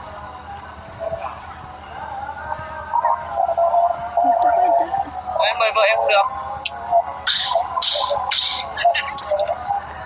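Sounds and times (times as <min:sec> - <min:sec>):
faint wavering voice: 0:00.1 - 0:10.0.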